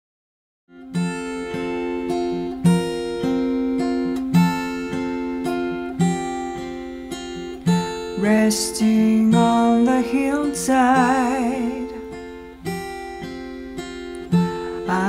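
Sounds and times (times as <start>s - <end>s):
acoustic guitar chords ringing: 0.7s - 15.0s.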